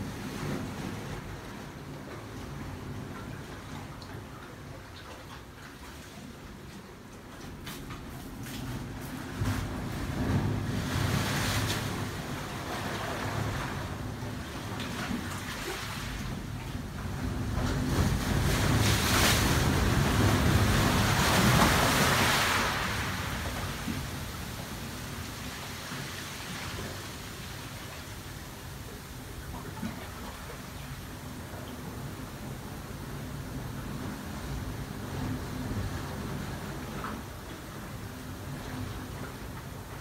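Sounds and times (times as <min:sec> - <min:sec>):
ocean waves rushing through rock channel: 0:08.8 - 0:40.0.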